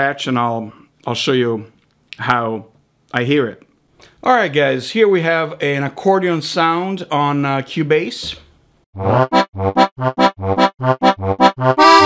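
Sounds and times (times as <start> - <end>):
accordion playing detached notes: 9.0 - 12.0.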